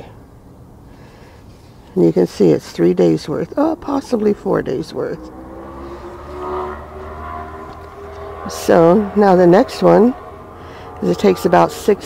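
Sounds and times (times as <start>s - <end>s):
steady engine hum: 0.0s - 12.0s.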